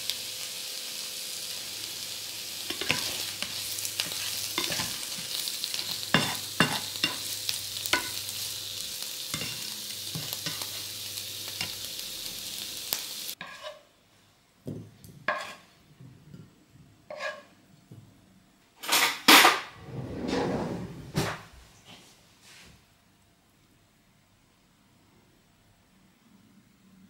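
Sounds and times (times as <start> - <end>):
vegetables sizzling in a frying pan: 0.0 - 13.8, 15.3 - 15.7
spatula scraping a pan: 2.6 - 8.5, 9.3 - 11.0, 13.3 - 13.9, 15.3 - 15.8, 17.1 - 17.6.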